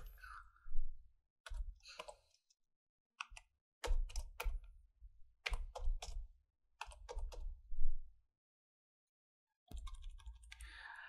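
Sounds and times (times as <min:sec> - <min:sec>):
keyboard typing: 0:06.8 - 0:07.5, 0:09.7 - 0:10.8.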